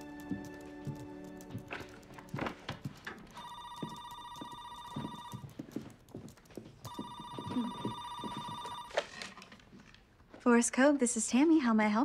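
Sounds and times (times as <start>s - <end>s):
footsteps: 0.0s - 10.5s
telephone ringing: 3.3s - 5.6s, 6.8s - 9.4s.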